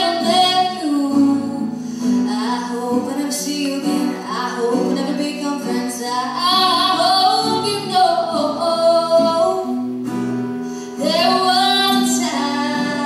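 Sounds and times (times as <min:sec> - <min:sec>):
guitar accompaniment: 0:00.0 - 0:13.0
person singing slow song: 0:10.8 - 0:13.0.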